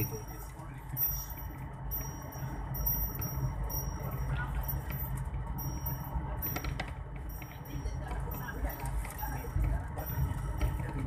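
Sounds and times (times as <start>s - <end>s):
vehicle rumble inside cabin: 0.0s - 11.0s.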